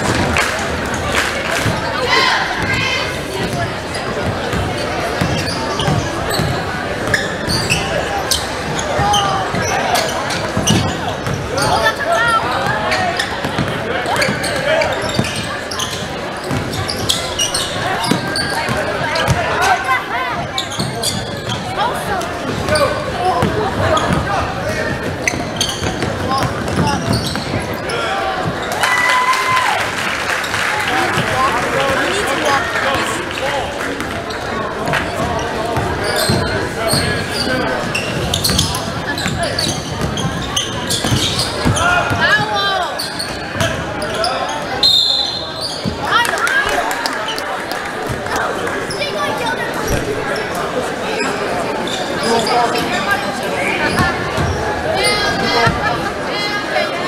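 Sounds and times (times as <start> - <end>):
spectators chatter and shouts: 0.0 - 57.0
basketball bouncing on court: 3.4 - 9.7, 10.3 - 11.5, 12.6 - 19.5, 22.3 - 24.3, 24.9 - 27.8, 34.0 - 43.9, 53.9 - 54.6
short high whistle: 44.8 - 45.5.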